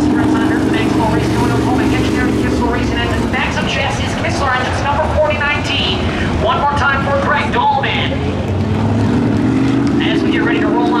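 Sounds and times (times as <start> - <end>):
people talking: 0.0 - 8.3, 10.0 - 11.0
engine running: 0.0 - 11.0.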